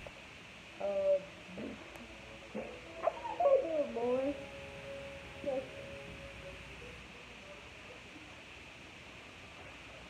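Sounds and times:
child humming wordless notes: 0:00.8 - 0:04.6, 0:05.4 - 0:06.0.

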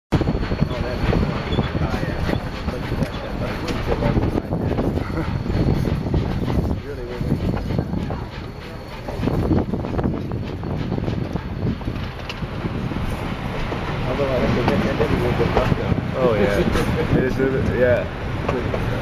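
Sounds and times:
train rumbling on track: 0:00.1 - 0:19.0
passengers talking: 0:00.2 - 0:19.0
wheels clicking over rails: 0:00.2 - 0:19.0.

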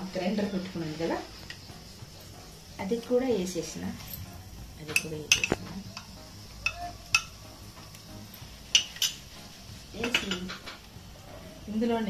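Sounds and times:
metal spoon tapping pot rim: 0:04.9 - 0:07.4, 0:08.7 - 0:09.2, 0:10.0 - 0:10.7.

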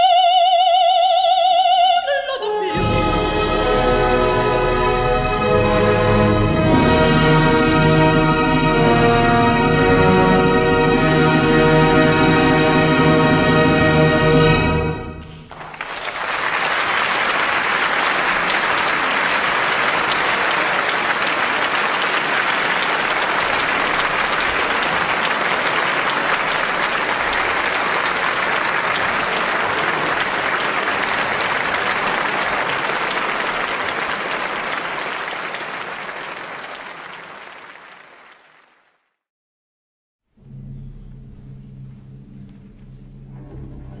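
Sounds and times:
audience applauding: 0:15.2 - 0:39.2.

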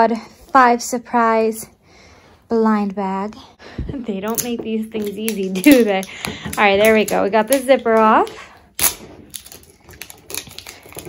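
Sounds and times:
plastic wrapping crinkling: 0:04.2 - 0:11.0.

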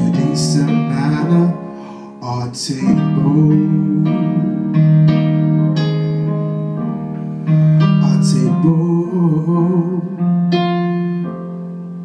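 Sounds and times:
wavering voice singing: 0:00.0 - 0:04.7
sustained piano chords: 0:00.0 - 0:12.0.

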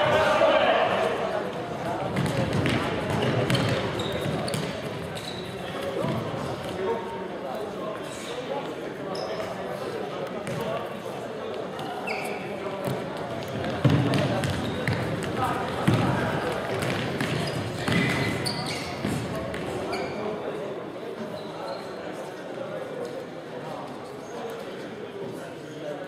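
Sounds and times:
shoe squeaks on floor: 0:03.2 - 0:05.8, 0:09.1 - 0:09.8, 0:11.8 - 0:12.6, 0:14.4 - 0:15.1, 0:17.2 - 0:20.4, 0:21.2 - 0:22.0.

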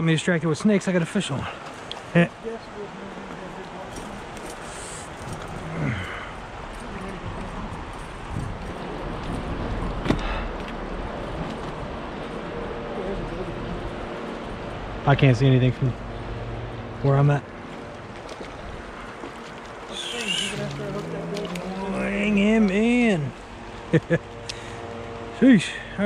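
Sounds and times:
stream current rushing: 0:00.0 - 0:15.1, 0:16.2 - 0:26.0
short voice sound: 0:19.9 - 0:21.7.

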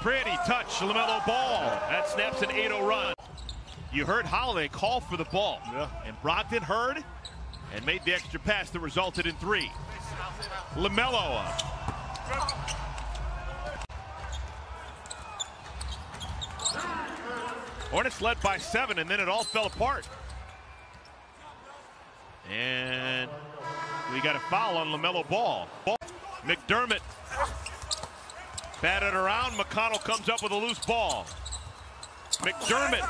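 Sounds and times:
sneakers squeaking: 0:03.2 - 0:04.0, 0:07.1 - 0:08.4, 0:11.4 - 0:13.3, 0:14.2 - 0:18.0, 0:27.0 - 0:33.0.

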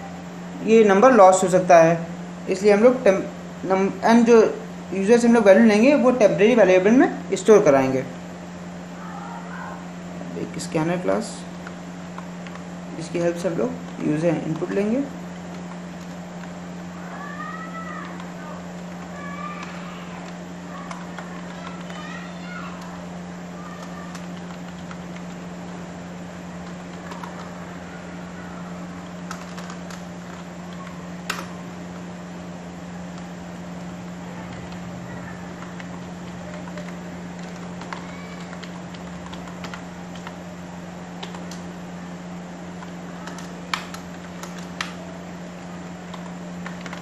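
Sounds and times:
low hum and hiss: 0:00.0 - 0:47.0
computer keyboard keystrokes: 0:11.6 - 0:12.7, 0:18.0 - 0:22.1, 0:23.8 - 0:25.4, 0:26.6 - 0:27.6, 0:29.0 - 0:31.6, 0:35.6 - 0:40.4, 0:41.2 - 0:41.7, 0:42.8 - 0:45.0, 0:46.1 - 0:47.0.

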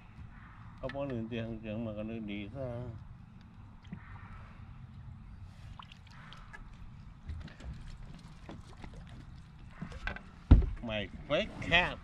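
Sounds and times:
thump on aluminum boat deck: 0:10.0 - 0:10.9.

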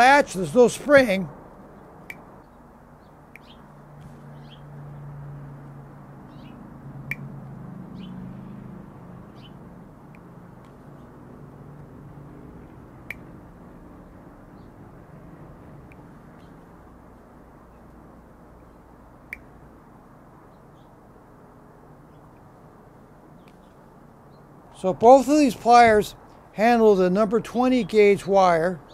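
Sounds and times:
small birds chirping: 0:00.3 - 0:05.2, 0:06.2 - 0:11.9, 0:13.0 - 0:14.8, 0:15.9 - 0:21.1, 0:22.0 - 0:24.9, 0:27.4 - 0:28.9.

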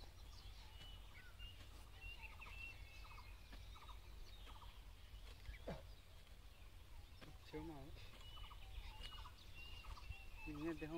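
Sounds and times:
distant birds chirping: 0:00.0 - 0:10.9.

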